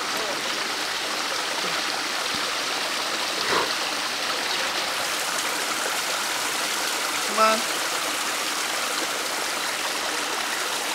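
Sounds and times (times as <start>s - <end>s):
stream running over rocks: 0.0s - 10.9s.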